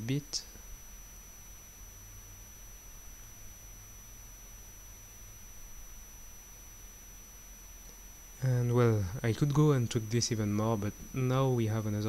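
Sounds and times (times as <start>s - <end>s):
low electrical hum: 0.0s - 12.0s
microphone hiss: 0.0s - 12.0s
thin high whine: 0.0s - 12.0s.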